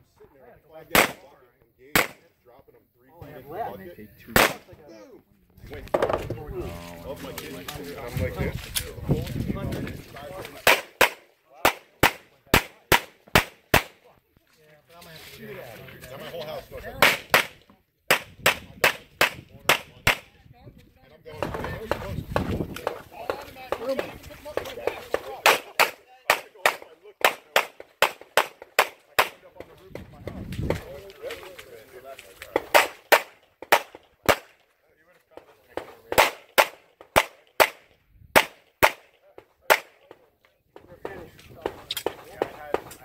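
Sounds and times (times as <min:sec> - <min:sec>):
voices: 0:00.0 - 0:37.8, 0:38.9 - 0:43.0
pistol shots: 0:00.9 - 0:01.2, 0:02.0 - 0:02.2, 0:04.3 - 0:04.7, 0:32.6 - 0:34.5, 0:36.1 - 0:39.1.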